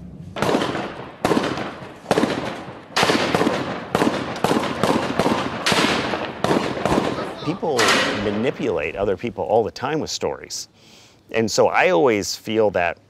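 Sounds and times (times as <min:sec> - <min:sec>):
gunshots echoing: 0:00.4 - 0:08.8.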